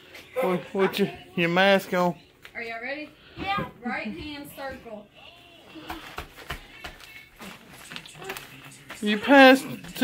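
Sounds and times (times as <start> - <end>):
hands and feet tapping on plastic mat: 5.7 - 10.0.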